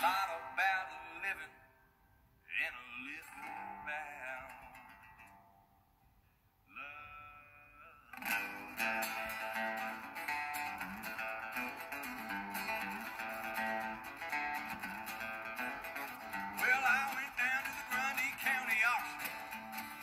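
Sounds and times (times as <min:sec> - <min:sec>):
acoustic guitar playing: 0:00.0 - 0:01.3, 0:03.2 - 0:05.8, 0:08.1 - 0:20.0.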